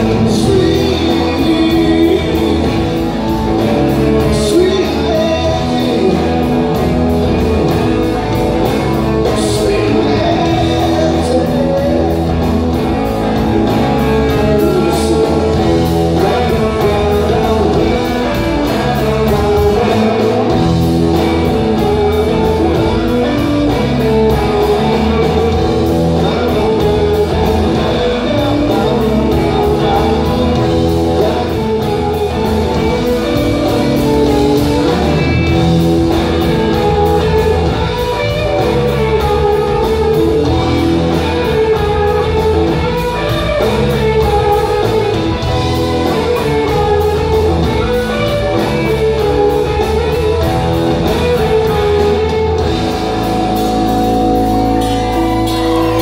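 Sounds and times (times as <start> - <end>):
bass guitar: 0.0 - 56.0
electric guitar: 0.0 - 56.0
steady drum beat: 0.0 - 56.0.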